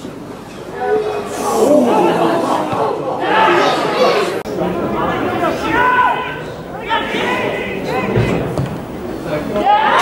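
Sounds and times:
players and spectators shouting: 0.8s - 8.6s, 9.3s - 10.0s.

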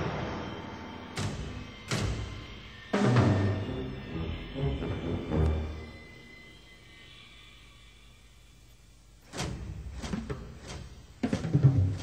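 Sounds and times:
faint low hum and hiss: 0.1s - 12.0s.

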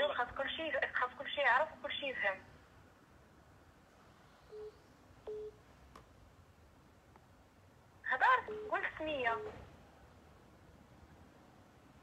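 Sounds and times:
telephone line beeps: 4.5s - 5.6s, 8.4s - 8.8s.

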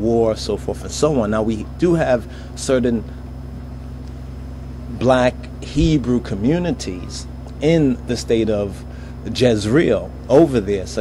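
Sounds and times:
steady low hum: 0.0s - 11.0s
man speaking: 4.9s - 11.0s.

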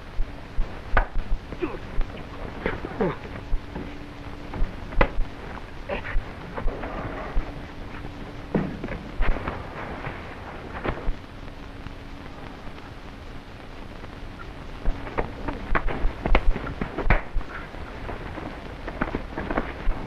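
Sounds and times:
faint steady hum: 0.0s - 20.0s
film soundtrack crackle and hiss: 0.0s - 20.0s.

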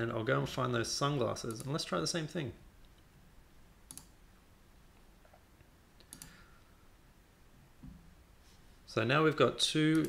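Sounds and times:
computer mouse clicks: 3.9s - 4.2s, 6.0s - 6.4s.

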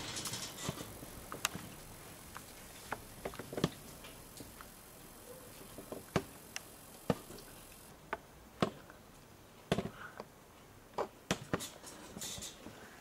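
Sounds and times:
faint room hiss: 0.0s - 13.0s.

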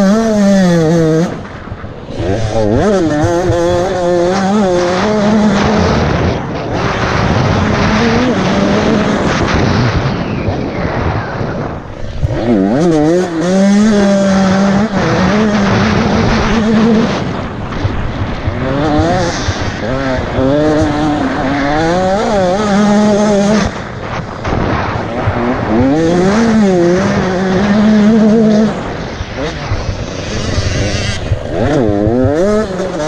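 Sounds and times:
motorcycle engine revving: 0.0s - 33.0s
wind rushing over microphone: 0.0s - 33.0s.

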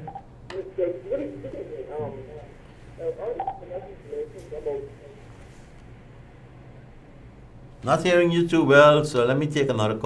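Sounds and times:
muffled voice over telephone: 0.0s - 5.5s
telephone line hum: 0.0s - 7.4s.

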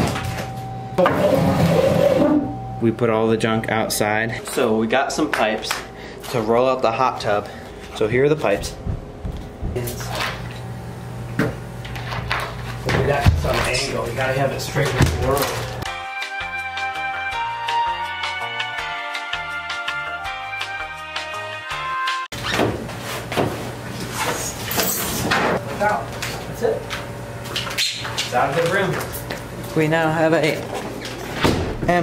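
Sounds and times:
steady low hum: 0.0s - 15.9s
background music: 15.9s - 22.3s.

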